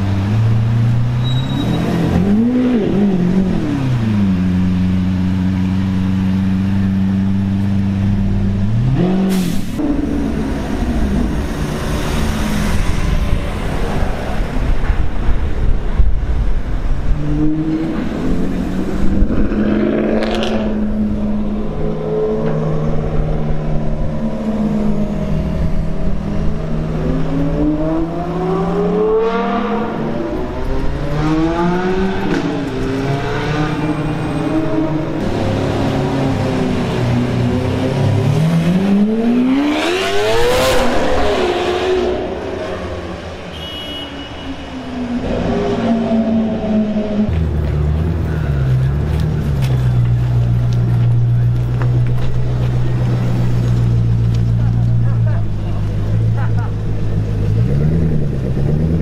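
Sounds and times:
car engines revving: 0:00.0 - 0:59.0.

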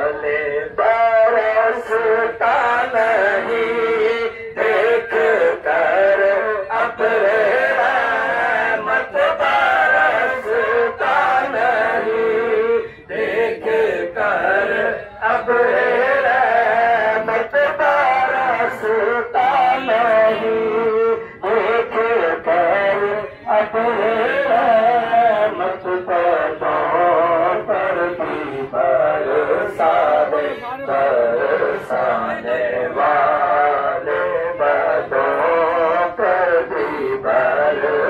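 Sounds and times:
man singing over loudspeaker: 0:00.0 - 0:38.0.

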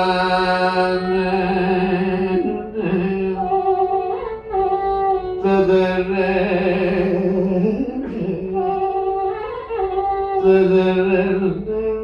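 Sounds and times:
instrumental accompaniment: 0:00.0 - 0:12.0
man singing: 0:00.0 - 0:12.0.

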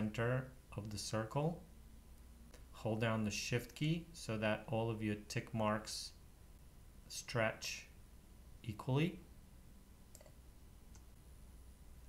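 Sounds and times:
computer mouse clicks: 0:10.1 - 0:11.1.

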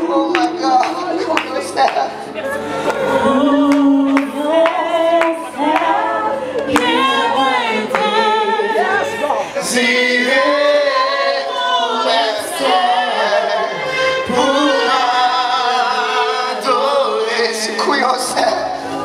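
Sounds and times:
choir singing worship song: 0:00.0 - 0:19.0.

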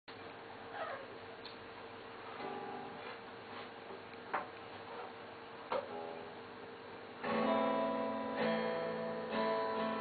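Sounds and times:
strummed guitar chord: 0:02.4 - 0:03.2, 0:07.2 - 0:10.0
acoustic guitar notes: 0:02.4 - 0:03.7, 0:07.2 - 0:10.0.

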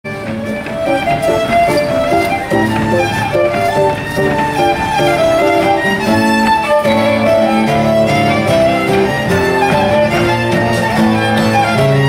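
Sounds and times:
fiddle playing short notes: 0:00.0 - 0:12.0
guitar accompaniment: 0:00.0 - 0:12.0.

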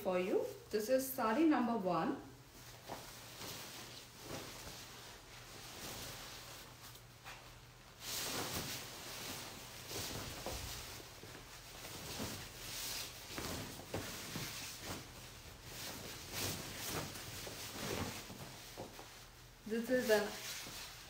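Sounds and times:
stiff fabric rustling: 0:02.4 - 0:21.0.

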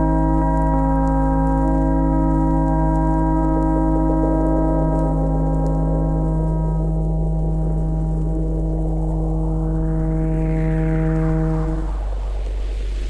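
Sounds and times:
low bass drone: 0:00.0 - 0:13.0
hissing sweep rising in pitch: 0:08.3 - 0:13.0
swirl of noise: 0:08.3 - 0:13.0.

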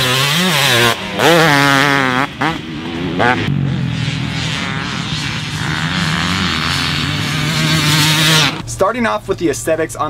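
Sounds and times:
motocross bike engine running: 0:00.0 - 0:08.6.

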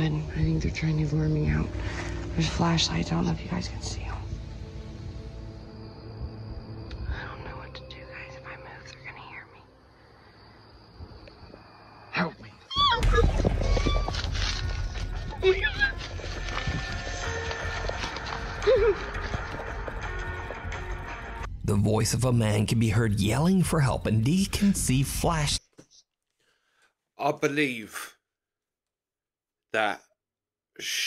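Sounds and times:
tense background music: 0:00.0 - 0:11.0, 0:13.0 - 0:25.2.

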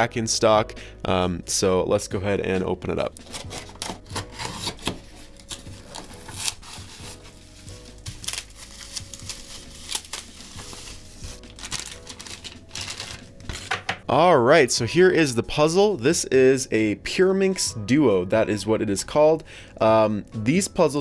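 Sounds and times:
quiet background music: 0:00.0 - 0:21.0
duct tape pulled off cardboard: 0:03.2 - 0:07.2
bubble wrap crinkling: 0:03.2 - 0:13.7.

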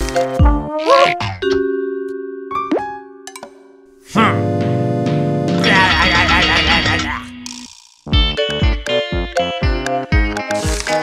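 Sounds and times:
held musical chord: 0:03.9 - 0:07.2.

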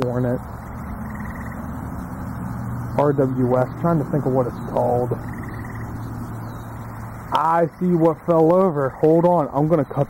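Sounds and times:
rapid high ticking: 0:00.0 - 0:09.8
low outdoor rumble: 0:00.0 - 0:10.0.

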